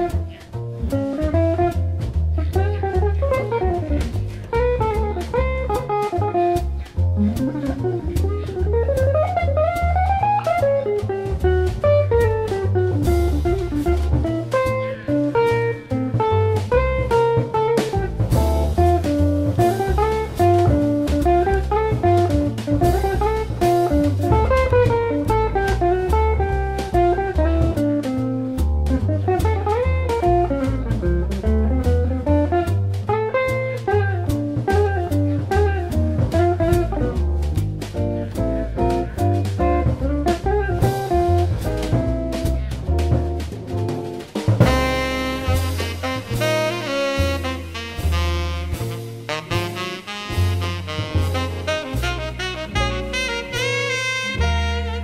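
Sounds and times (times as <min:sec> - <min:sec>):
double bass: 0:00.0 - 0:55.0
drum kit with cymbals: 0:00.0 - 0:55.0
guitar quick melodic runs: 0:00.0 - 0:55.0.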